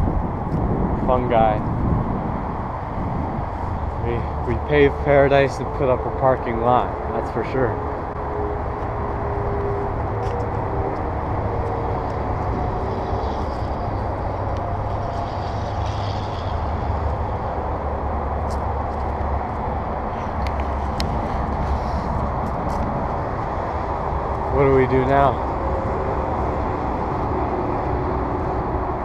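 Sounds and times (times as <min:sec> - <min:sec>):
distant road traffic rumble: 0:00.0 - 0:29.0
wind buffeting microphone: 0:00.0 - 0:29.0.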